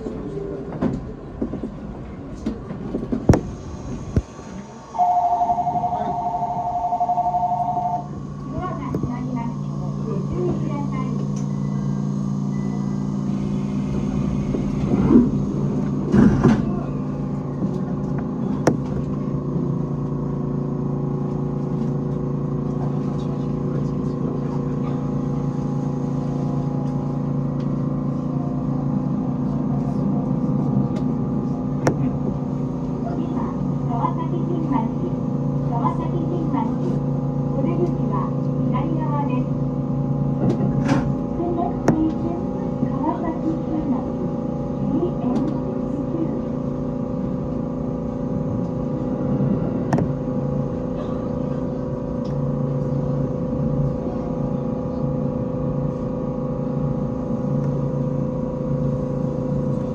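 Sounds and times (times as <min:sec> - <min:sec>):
electric train humming: 0:00.0 - 0:59.9.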